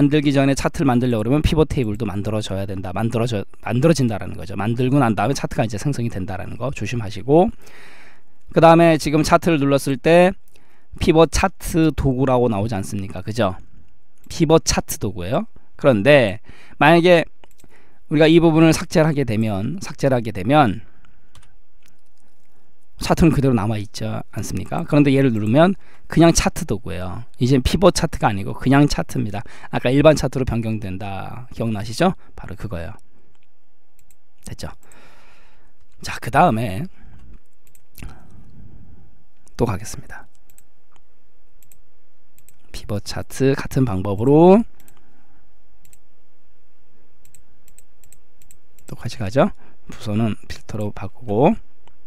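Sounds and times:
low background noise: 0.0s - 52.0s
keyboard and mouse clicks: 21.3s - 22.5s, 33.3s - 34.2s, 37.2s - 38.0s, 40.3s - 41.0s, 41.6s - 41.8s, 42.4s - 42.7s, 45.8s - 46.0s, 47.2s - 49.0s.

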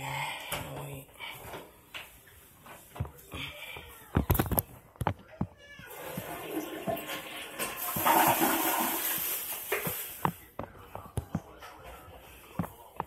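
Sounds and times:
toilet flush rushing water: 5.9s - 9.8s.

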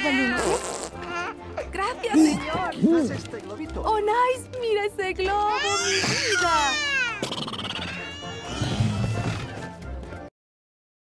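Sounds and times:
background film music: 0.0s - 10.3s.

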